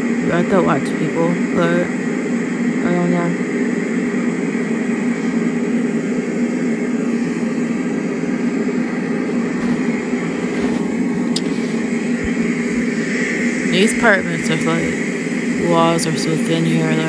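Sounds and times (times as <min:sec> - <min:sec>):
steady mechanical drone: 0:00.0 - 0:17.0.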